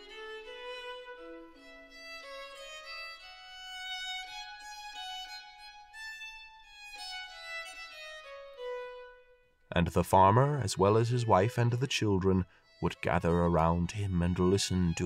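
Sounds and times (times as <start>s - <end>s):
solo violin slow melody: 0.0s - 15.0s.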